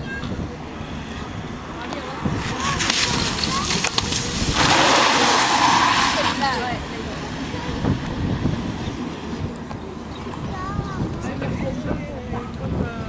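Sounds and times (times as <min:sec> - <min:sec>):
tyres throwing up water: 0:01.8 - 0:09.9.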